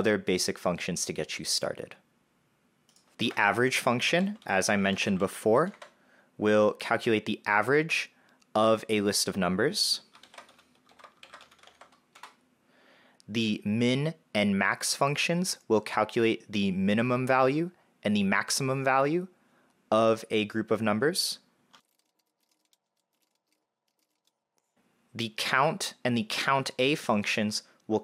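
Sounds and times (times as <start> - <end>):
faint keyboard typing: 2.9 - 6.0, 10.0 - 12.4, 21.7 - 24.7.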